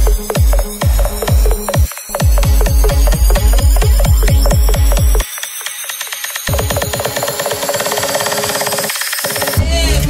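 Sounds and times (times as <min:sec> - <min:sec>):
electronic dance music build-up: 0:00.0 - 0:10.0.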